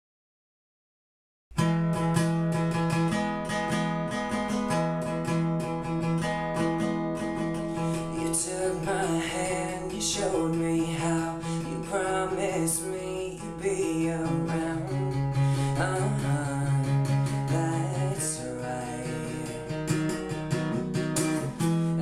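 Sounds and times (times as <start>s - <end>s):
acoustic guitar playing: 1.5s - 22.0s.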